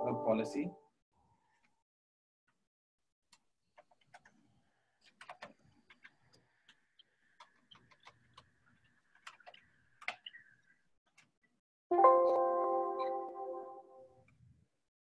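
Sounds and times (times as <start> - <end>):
computer keyboard keystrokes: 5.0 - 6.8, 7.4 - 10.4.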